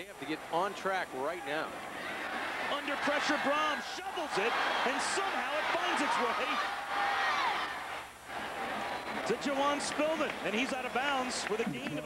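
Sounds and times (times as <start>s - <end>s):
stadium crowd noise: 0.0s - 12.0s
broadcast voice: 2.7s - 6.6s, 9.2s - 12.0s.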